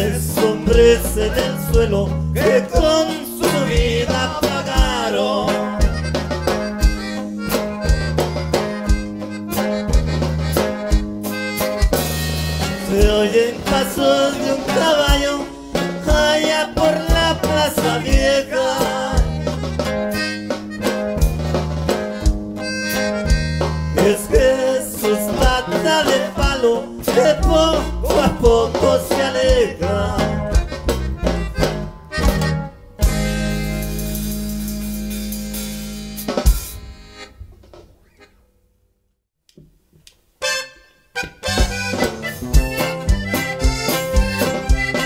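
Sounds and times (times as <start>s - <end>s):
steady bass beat: 0.0s - 37.2s, 41.3s - 45.0s
button accordion melody: 0.0s - 38.4s, 40.4s - 45.0s
guitar strumming: 0.0s - 38.4s, 40.4s - 45.0s.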